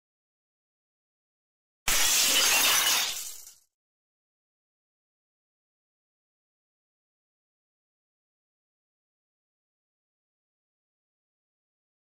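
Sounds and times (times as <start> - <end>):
crackling crash sound effect: 1.9 - 3.5.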